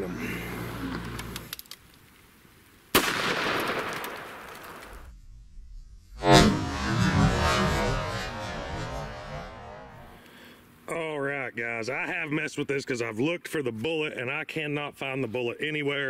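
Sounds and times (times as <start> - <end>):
gunshot crack echoing: 2.9 - 5.0
slowed gunshot boom: 3.0 - 10.2.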